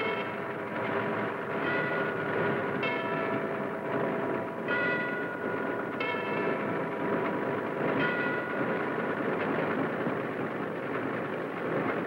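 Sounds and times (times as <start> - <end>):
old motor car traffic rumble: 0.0 - 12.0.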